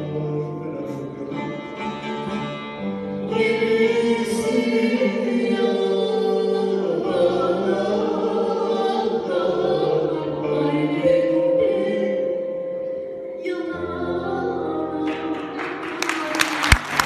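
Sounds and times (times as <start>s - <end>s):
lute ensemble playing: 0.0s - 15.0s.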